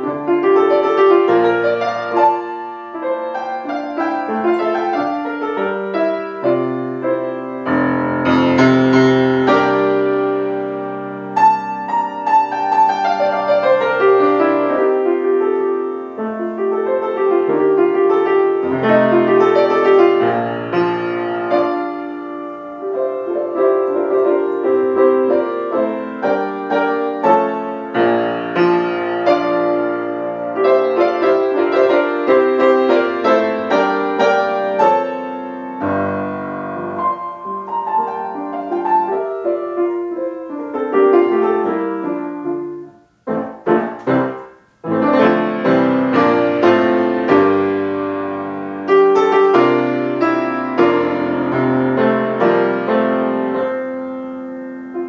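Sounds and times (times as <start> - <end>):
solo piano classical music: 0.0 - 55.0.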